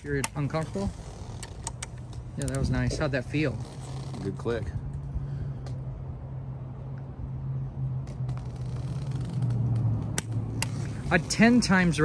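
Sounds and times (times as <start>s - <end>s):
metallic clicks of tools: 1.4s - 2.8s.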